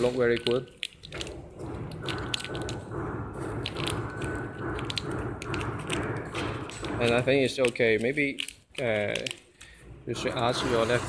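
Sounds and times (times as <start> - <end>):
sharp machine clicks: 0.0 - 9.4
packing machine mechanical pulse: 0.0 - 11.0.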